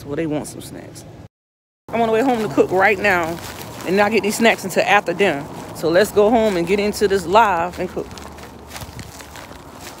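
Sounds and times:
faint footsteps: 2.0s - 10.0s.

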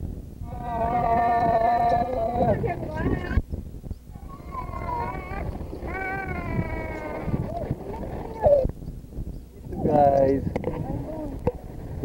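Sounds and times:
child making wordless calls: 4.2s - 7.6s.

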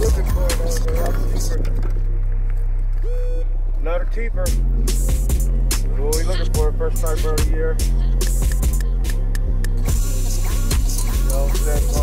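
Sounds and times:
hip hop backing music: 0.0s - 3.7s, 4.3s - 12.0s.

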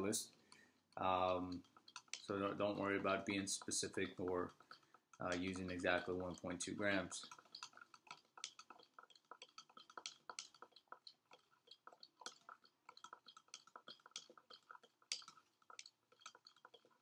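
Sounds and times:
spoon clicking against plastic beaker: 0.2s - 17.0s.

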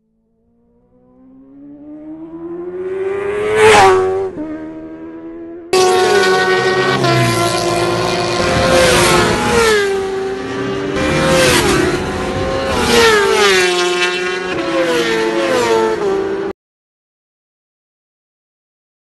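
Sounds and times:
motorcycle engine at high revs: 1.1s - 16.4s.

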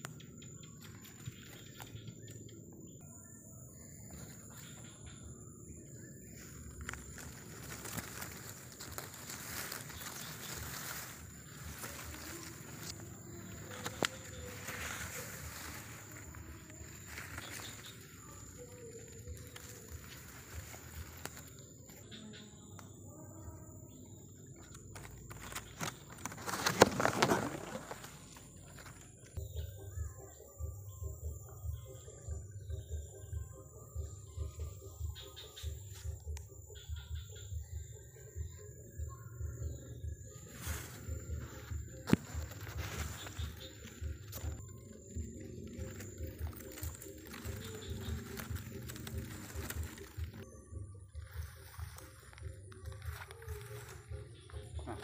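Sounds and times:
high-pitched insect drone: 0.0s - 30.9s, 31.8s - 55.0s
leaves and stems rustling: 3.8s - 29.6s, 39.6s - 55.0s.

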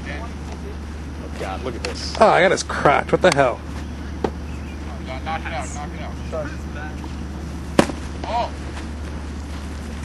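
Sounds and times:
baseball impact crack: 7.7s - 9.0s.

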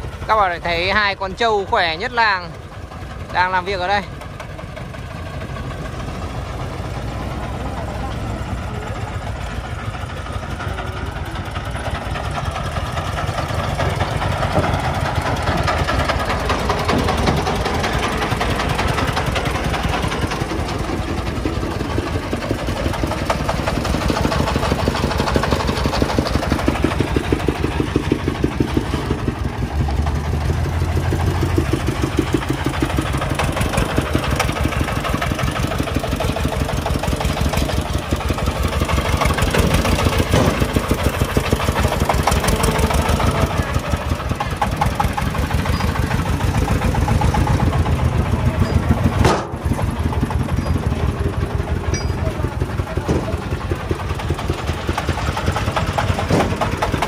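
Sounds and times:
diesel engine chugging: 0.0s - 57.0s.

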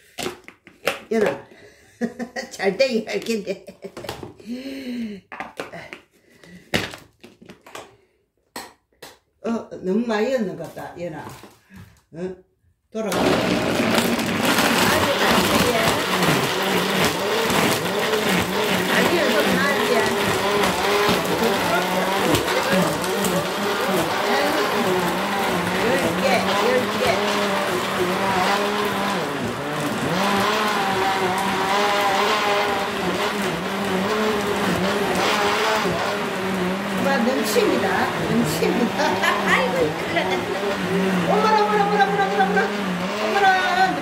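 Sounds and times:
blender motor running: 13.1s - 44.0s.

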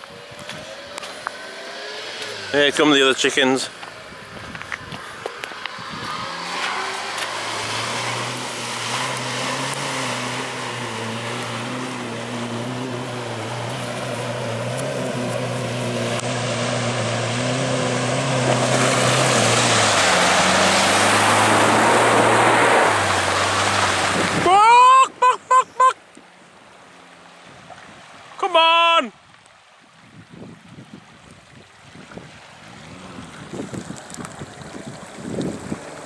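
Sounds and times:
car engine at low revs: 0.0s - 24.4s
water rushing and splashing: 0.0s - 36.0s.

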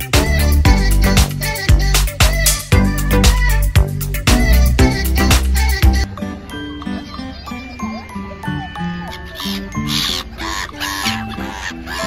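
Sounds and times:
background music: 0.0s - 12.0s
gulls calling: 6.7s - 12.0s.

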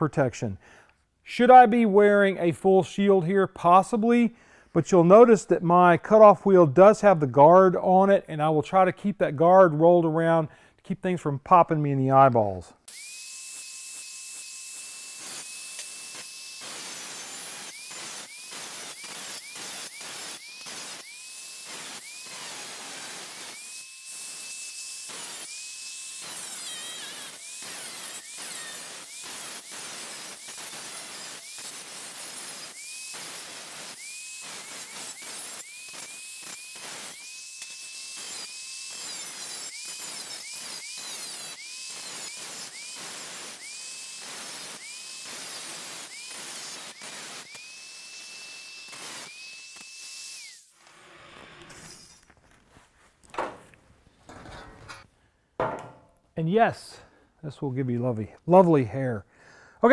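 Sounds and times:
angle grinder cutting metal: 12.8s - 52.5s.

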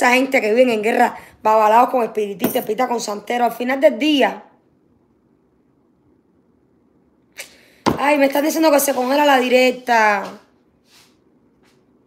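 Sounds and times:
speech: 0.0s - 4.5s, 7.9s - 10.5s.

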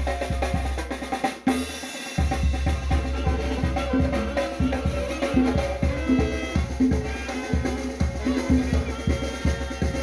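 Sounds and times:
bass drum and snare beat: 0.0s - 10.0s
sustained brass: 3.1s - 10.0s.

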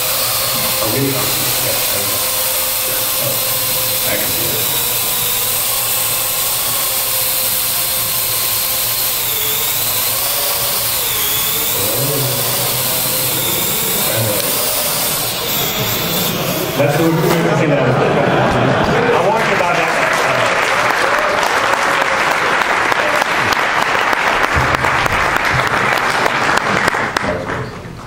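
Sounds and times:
quadcopter rotors whining: 0.0s - 19.9s.

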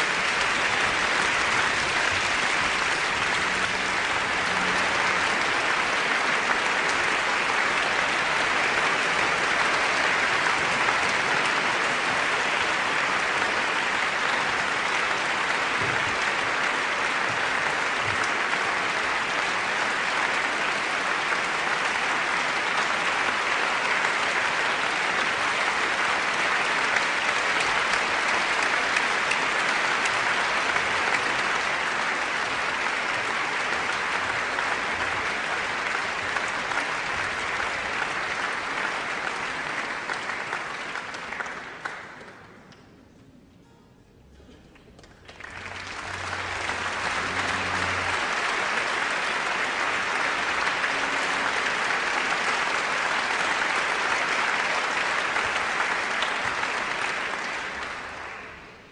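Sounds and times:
audience applauding: 0.0s - 42.6s, 44.7s - 58.9s.

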